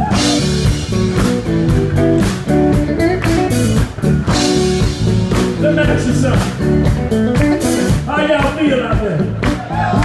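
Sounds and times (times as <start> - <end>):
blues band playing: 0.0 - 10.0
electric guitar: 0.0 - 10.0.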